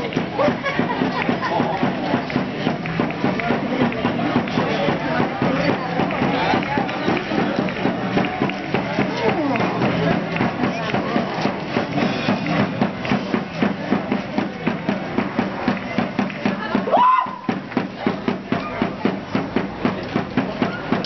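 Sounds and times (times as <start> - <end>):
crowd voices: 0.0 - 21.0
drum beating quick rhythm: 0.0 - 21.0.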